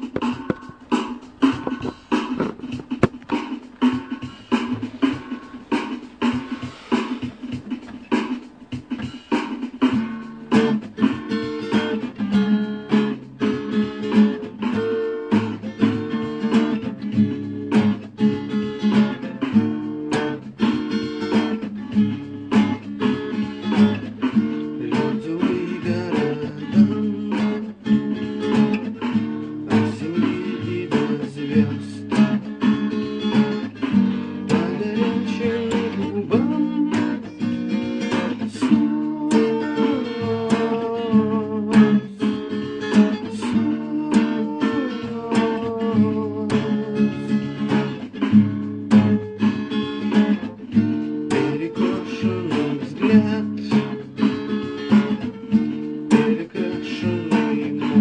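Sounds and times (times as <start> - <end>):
acoustic guitar strumming: 0.0 - 58.0.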